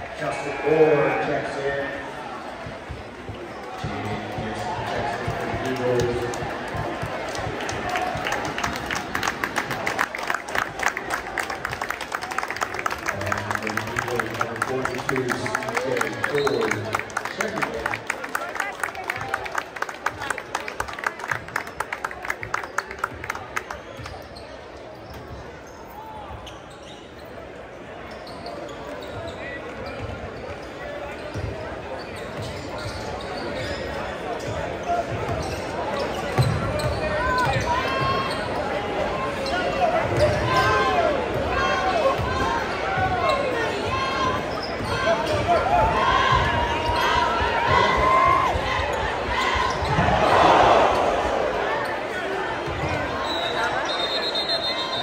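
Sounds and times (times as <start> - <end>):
crowd cheering: 3.4 - 24.1, 39.8 - 55.0
crowd shouting: 40.2 - 55.0.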